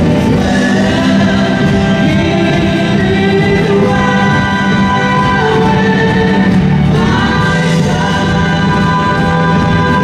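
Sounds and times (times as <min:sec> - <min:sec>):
choir singing: 0:00.0 - 0:10.0
woman singing into microphone: 0:00.0 - 0:10.0.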